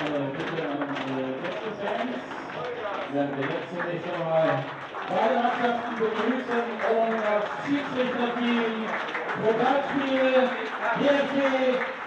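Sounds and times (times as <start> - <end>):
crowd hubbub: 0.0 - 12.0
people talking: 0.0 - 12.0.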